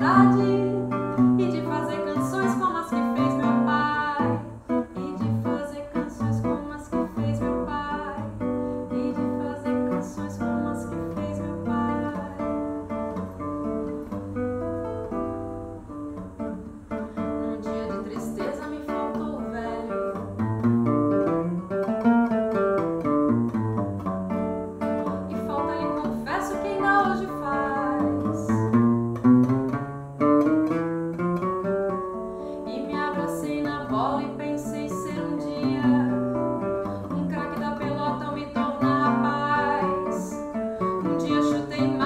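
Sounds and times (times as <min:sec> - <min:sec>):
nylon-string guitar playing samba: 0:00.0 - 0:42.0.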